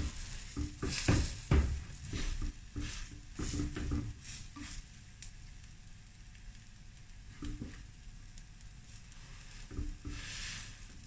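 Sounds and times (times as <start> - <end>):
food sizzling on griddle: 0.0 - 11.0.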